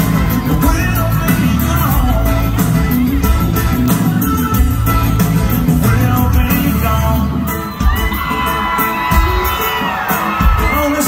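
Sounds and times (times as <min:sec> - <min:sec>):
crowd cheering and whooping: 0:00.0 - 0:02.3, 0:05.7 - 0:11.0
country band playing: 0:00.0 - 0:11.0
drum beat: 0:00.0 - 0:11.0.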